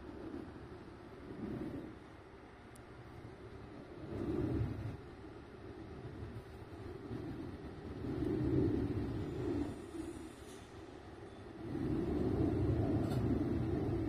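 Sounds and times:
low outdoor rumbling: 0.0 - 14.0.

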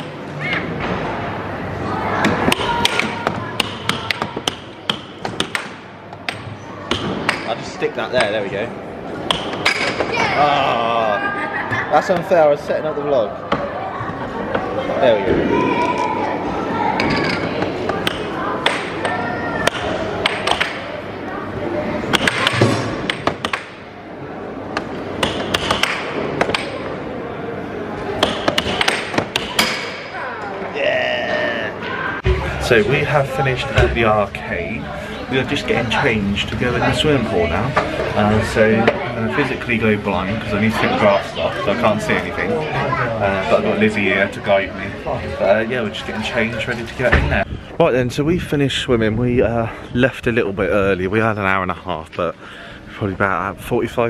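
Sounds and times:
arcade background noise: 0.0 - 54.0
air hockey mallets and puck clacking: 2.2 - 7.6, 8.2 - 8.6, 9.2 - 10.2, 17.0 - 20.9, 22.1 - 23.8, 24.7 - 27.0, 28.1 - 30.1.

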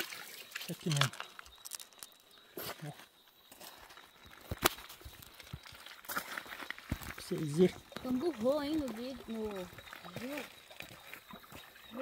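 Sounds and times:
objects knocking on pebbles: 0.8 - 2.3, 4.2 - 8.1.

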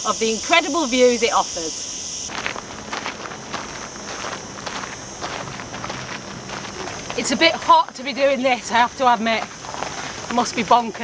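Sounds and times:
high insect buzz: 0.0 - 11.0
footsteps crunching on gritty path: 2.3 - 11.0.

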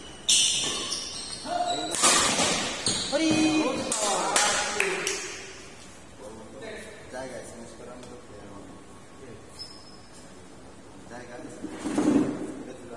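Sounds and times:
rackets hitting shuttlecock: 0.3 - 4.2.

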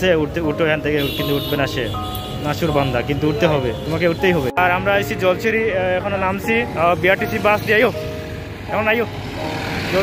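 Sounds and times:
road traffic: 0.0 - 10.0
bus passing close: 6.6 - 10.0.

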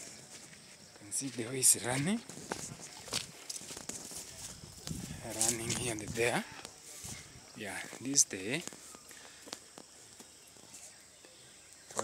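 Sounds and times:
footsteps on grass: 0.0 - 11.0
faint outdoor background noise: 0.0 - 12.0.

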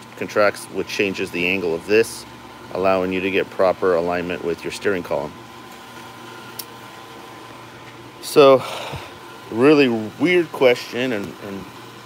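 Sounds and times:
room tone hiss and hum: 0.0 - 12.0.

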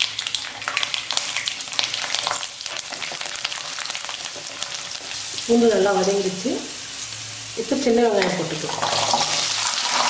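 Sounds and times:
spices sizzling in hot oil: 0.0 - 10.0.

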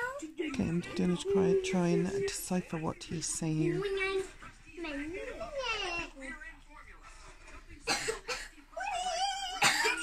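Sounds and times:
child cough-like bursts: 9.6 - 10.0.

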